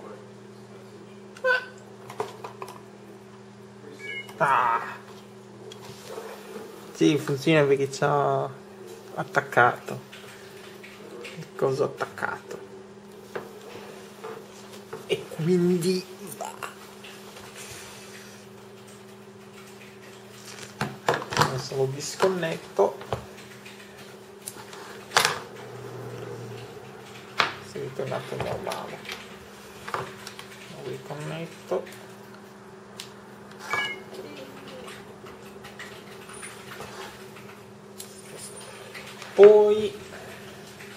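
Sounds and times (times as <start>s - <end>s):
low electrical hum: 0.0s - 40.9s.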